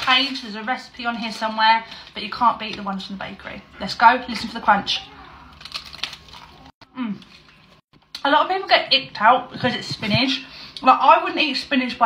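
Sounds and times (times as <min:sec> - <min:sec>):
teeth crunching flaky pastry: 0:05.3 - 0:08.2.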